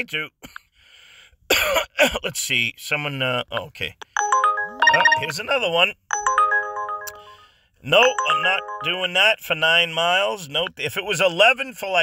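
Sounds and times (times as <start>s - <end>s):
phone alert rising chime: 4.1s - 9.2s.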